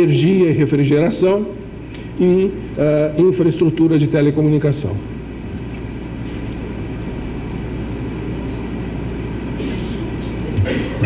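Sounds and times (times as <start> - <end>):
room noise rumble and hum: 0.0 - 11.0.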